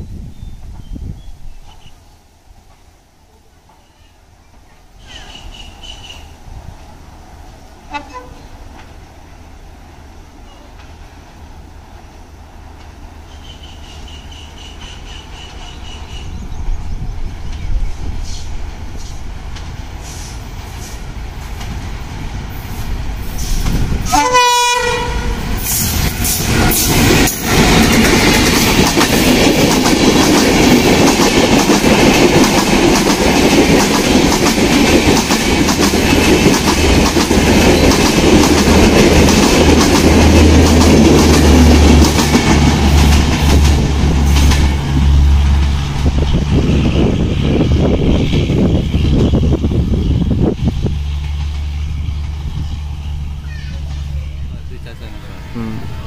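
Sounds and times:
diesel locomotive passing: 0.0 - 56.0
train horn blast: 7.8 - 8.6, 23.4 - 25.8, 54.6 - 56.0.

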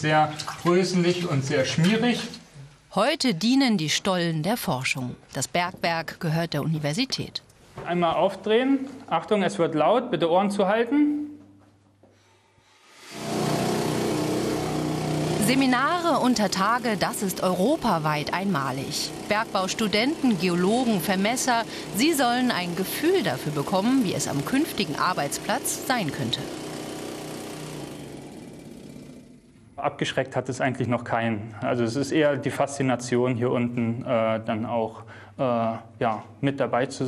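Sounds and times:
pneumatic rock drill hammering: 12.9 - 29.4.

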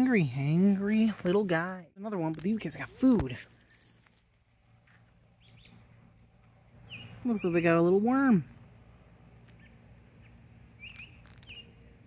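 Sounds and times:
faint outdoor ambience: 0.0 - 12.0
faint bird chirp: 5.3 - 6.0, 6.7 - 7.6, 8.5 - 12.0.

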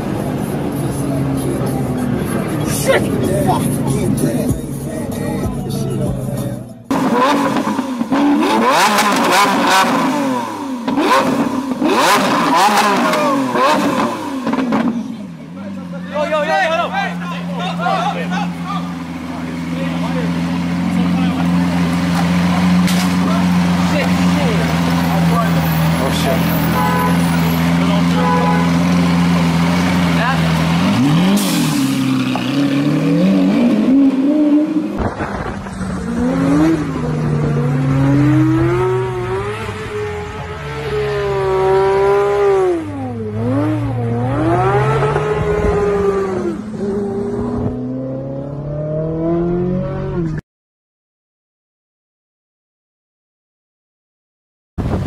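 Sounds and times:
sports car engine accelerating: 0.0 - 16.8, 17.4 - 50.4
car engine idling: 9.9 - 31.2.

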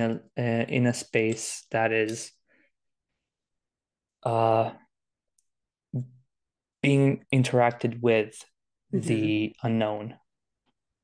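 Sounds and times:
man speaking: 0.0 - 2.4, 4.2 - 5.0, 5.9 - 10.3.

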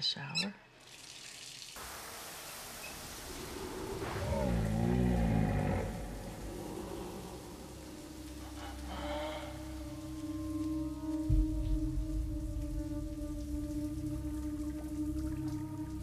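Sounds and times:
shower spray hissing: 0.8 - 16.0
steady low tone: 3.3 - 16.0.

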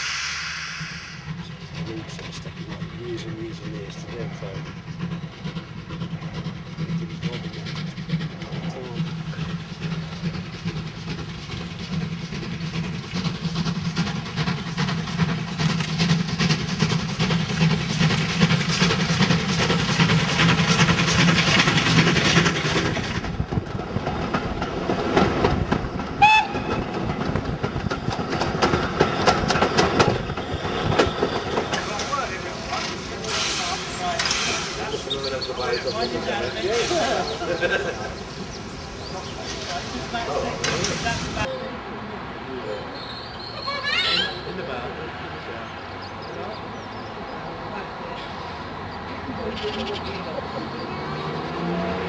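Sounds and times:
steam train passing: 0.0 - 52.0
carriage wheels clattering over joints: 1.4 - 23.4, 30.9 - 41.5
train whistle: 26.2 - 26.9.

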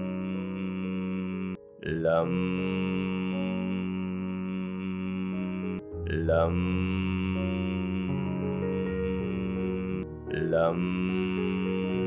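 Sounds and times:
person chanting a syllable: 0.0 - 12.0
background music drone: 0.1 - 12.0.

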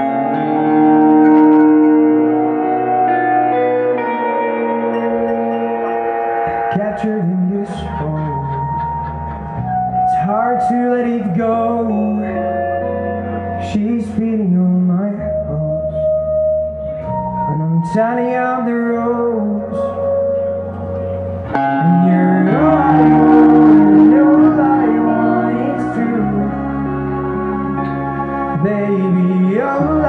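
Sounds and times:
electric guitar notes: 0.0 - 30.0
low bass line: 0.0 - 30.0.

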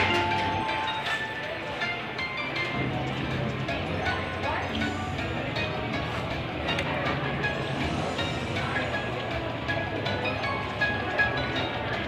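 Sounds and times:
slot machine bonus music: 0.0 - 6.2.

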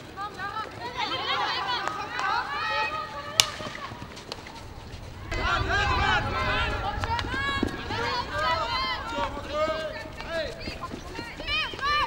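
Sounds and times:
voices calling and shouting: 0.1 - 12.0
low rumble: 3.7 - 12.0.

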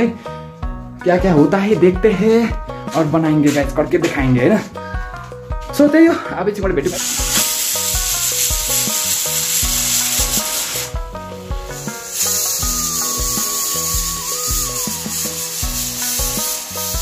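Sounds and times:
background music: 0.0 - 17.0
pressure cooker hissing steam: 6.9 - 17.0.

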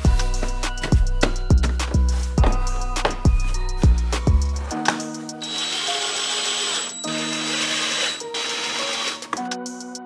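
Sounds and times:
background music: 0.0 - 10.0
cordless drill whining: 5.4 - 9.5.

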